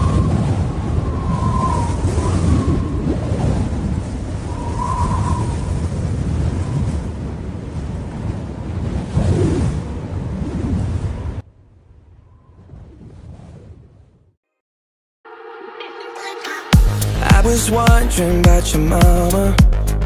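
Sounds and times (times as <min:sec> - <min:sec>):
rushing wind-like rumble: 0:00.0 - 0:14.2.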